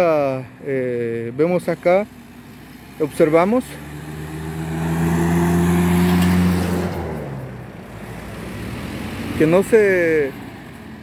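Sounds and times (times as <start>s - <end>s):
truck driving past: 1.8s - 11.0s.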